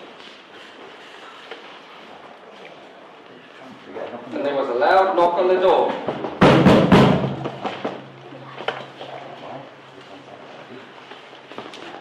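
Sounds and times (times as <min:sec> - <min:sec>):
people moving about in hall: 0:00.0 - 0:12.0.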